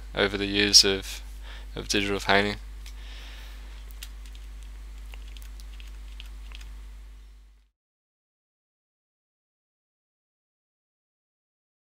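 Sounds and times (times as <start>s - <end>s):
low electrical hum: 0.0s - 7.7s.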